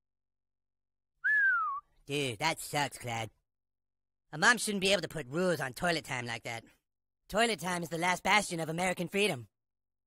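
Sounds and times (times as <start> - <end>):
downward sliding whistle: 1.2 - 1.8.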